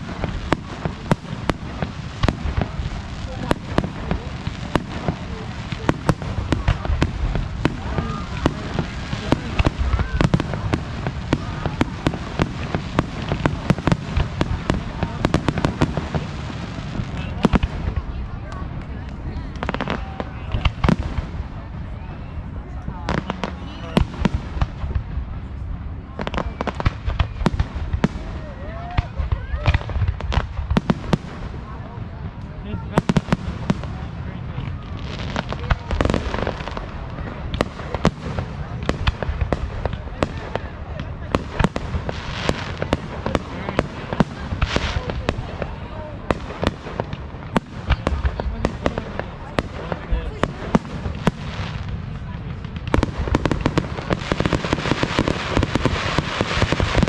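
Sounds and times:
fireworks bursting: 0:00.0 - 0:57.0.

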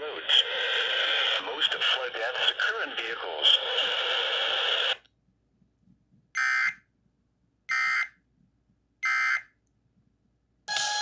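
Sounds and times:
music: 0:10.7 - 0:11.0.

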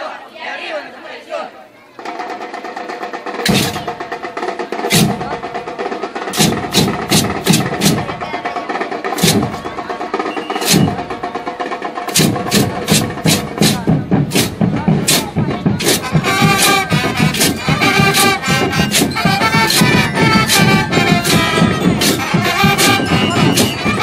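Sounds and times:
deep drum hits: 0:09.2 - 0:09.8.

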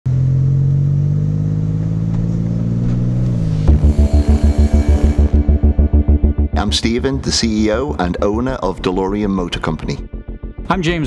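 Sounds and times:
car engine running: 0:00.1 - 0:10.6
pulsing low music beat: 0:02.1 - 0:11.0.

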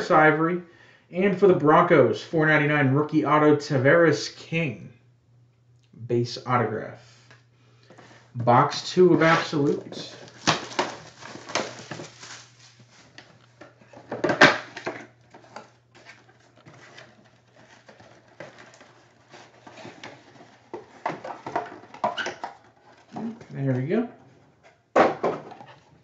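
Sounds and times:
low steady hum: 0:00.0 - 0:26.0
wrapper and cardboard crinkling: 0:09.2 - 0:23.4
loud wrapper crackle: 0:09.7 - 0:13.4.

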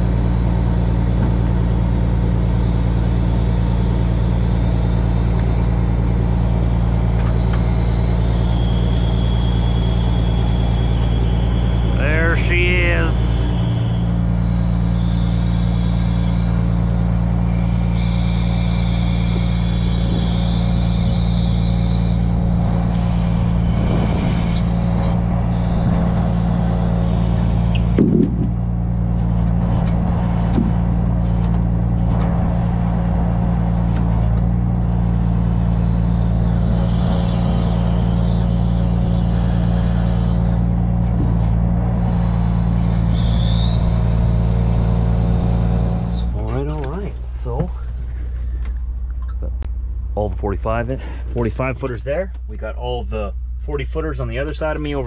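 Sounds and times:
high hydraulic whine: 0:00.0 - 0:49.6
truck engine running at raised speed: 0:00.0 - 0:55.0.

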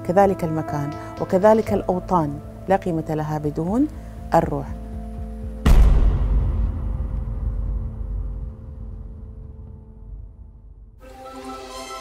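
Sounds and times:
faint musical drone: 0:00.0 - 0:05.7
low cinematic boom: 0:05.6 - 0:11.0.

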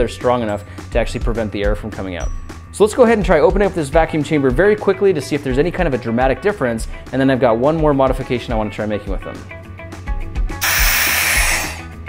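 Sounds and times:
background music: 0:00.0 - 0:12.0
air hissing into vacuum chamber: 0:10.6 - 0:11.9.

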